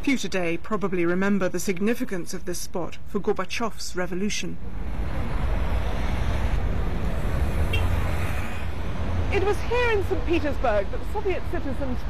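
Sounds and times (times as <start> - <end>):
passing vehicles rumble: 4.5 - 12.0
traffic hiss: 4.7 - 12.0.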